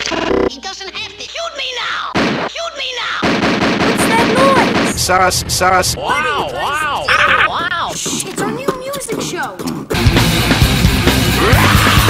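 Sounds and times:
rapid cartoon gunfire: 2.1s - 2.5s, 3.2s - 7.2s.

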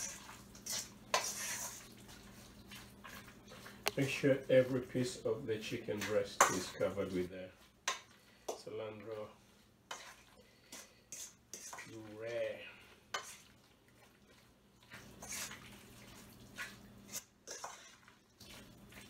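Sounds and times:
wet stirring by hand: 0.0s - 19.0s.

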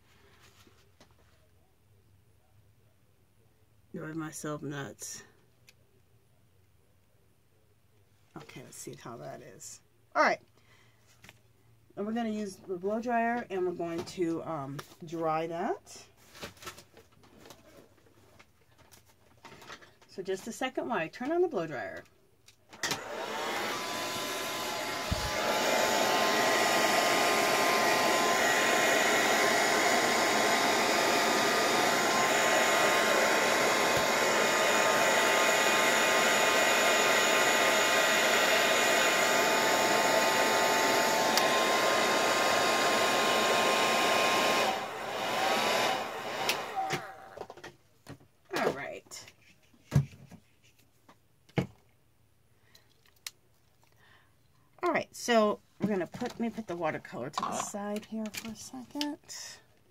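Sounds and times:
blow dryer running: 22.8s - 47.5s.

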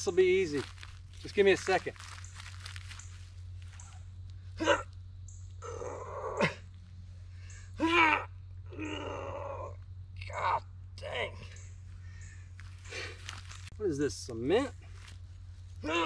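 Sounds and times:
man grunting and straining: 4.6s - 4.9s, 5.6s - 6.6s, 7.8s - 11.4s, 15.8s - 16.0s.

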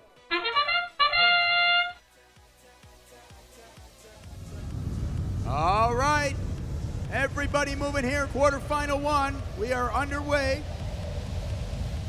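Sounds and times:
synthesized brass fanfare: 0.2s - 2.0s
low rumble of arena noise: 4.2s - 12.0s.

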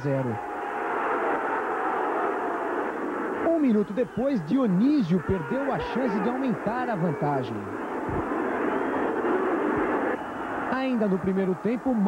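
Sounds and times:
stadium crowd voices reacting: 0.0s - 12.0s.

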